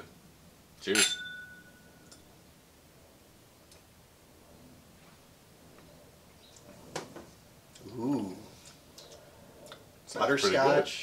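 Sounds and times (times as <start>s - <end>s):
glasses clinking: 0.9s - 2.3s.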